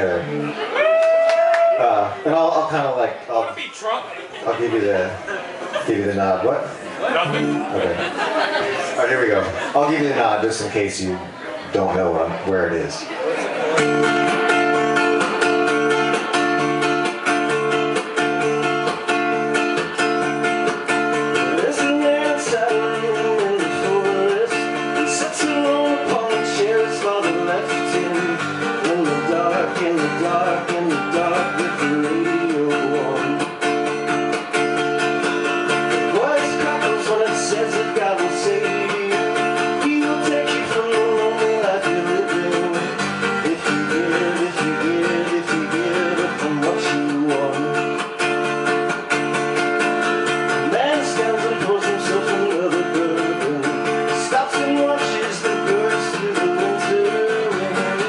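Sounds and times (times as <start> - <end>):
acoustic guitar strumming: 0.0 - 0.8, 6.4 - 12.0, 13.1 - 58.0
man singing: 21.3 - 33.6, 35.9 - 48.1, 50.5 - 58.0.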